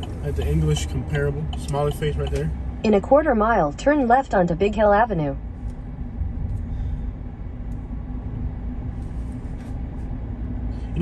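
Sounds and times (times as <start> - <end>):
faint steady hum: 0.0 - 11.0
road and engine rumble: 0.0 - 11.0.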